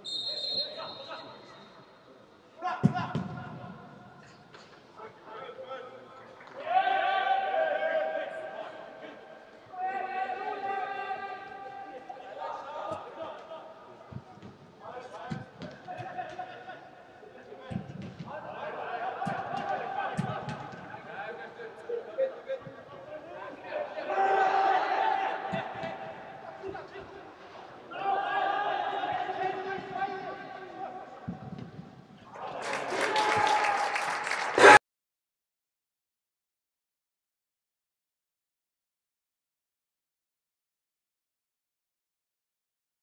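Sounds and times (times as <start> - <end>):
players shouting in echoing hall: 0.0 - 1.9, 2.5 - 34.8.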